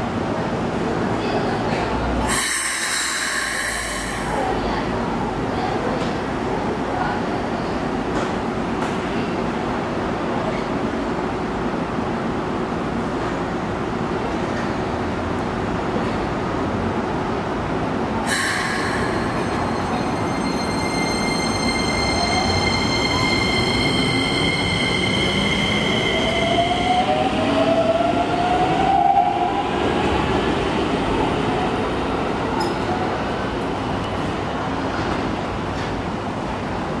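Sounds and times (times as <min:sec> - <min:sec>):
high ringing tone: 0:19.0 - 0:26.8.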